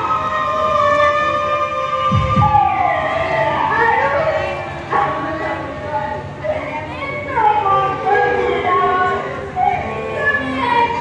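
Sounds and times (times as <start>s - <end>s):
deep low beats: 2.1s - 2.9s.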